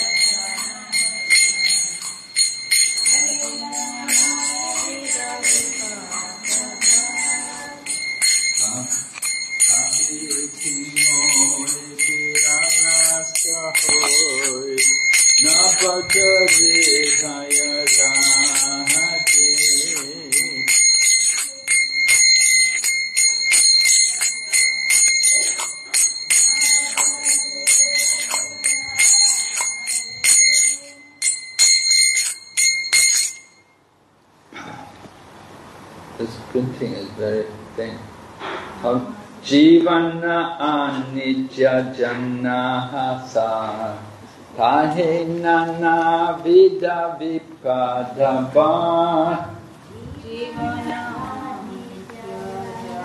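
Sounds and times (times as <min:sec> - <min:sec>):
hand cymbals clashing: 0:00.0 - 0:33.6.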